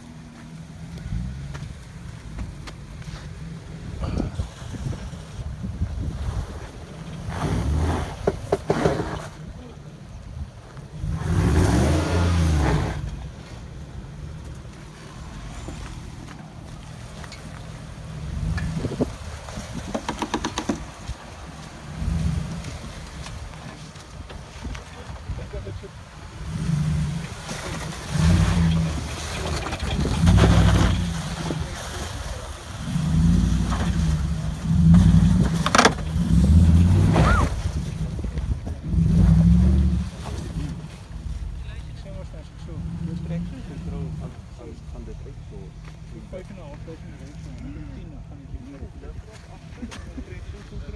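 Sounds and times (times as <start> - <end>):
wind buffeting microphone: 3.7 - 8.5, 18.2 - 27.4
car engine revving: 10.8 - 19.5, 26.2 - 47.5.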